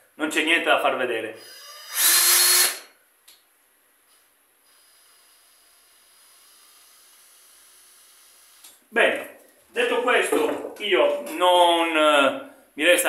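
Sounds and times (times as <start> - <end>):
man's voice: 9.0 - 13.0.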